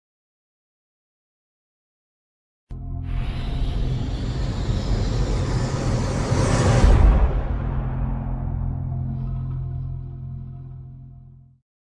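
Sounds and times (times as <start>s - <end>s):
deep drone: 2.7s - 11.6s
low rumbling whoosh: 3.0s - 11.2s
heavy boom: 3.1s - 10.0s.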